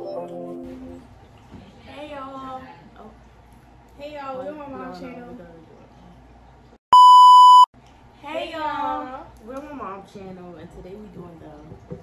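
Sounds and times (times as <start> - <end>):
high censor bleep: 6.9 - 7.7.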